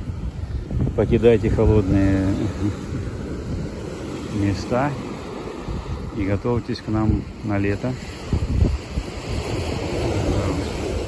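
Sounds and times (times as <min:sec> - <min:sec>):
ocean surf: 0:00.0 - 0:11.0
wind buffeting microphone: 0:00.0 - 0:11.0.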